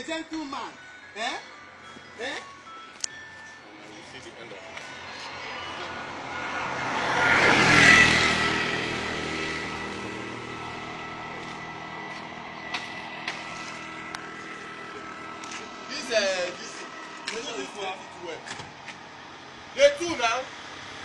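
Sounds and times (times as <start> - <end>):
vehicle passing by: 3.9 - 21.0.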